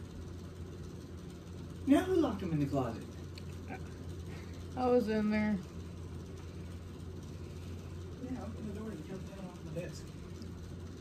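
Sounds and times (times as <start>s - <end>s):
fan humming: 0.0s - 11.0s.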